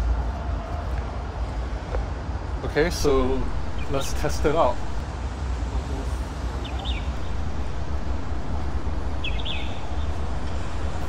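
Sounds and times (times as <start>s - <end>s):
steady low rumble: 2.3s - 11.0s
high chirps: 6.6s - 11.0s.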